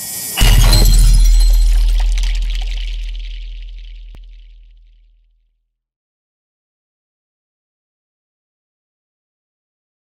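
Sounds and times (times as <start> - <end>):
high shimmer: 0.0 - 4.2
deep low rumble: 0.4 - 4.8.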